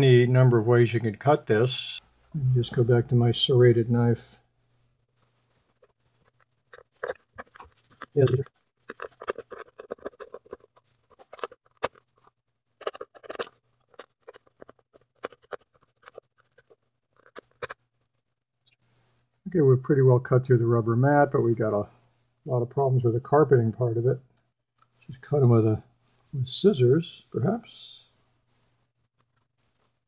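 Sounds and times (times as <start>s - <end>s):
serrated knife sawing rubber mat: 6.7s - 17.8s.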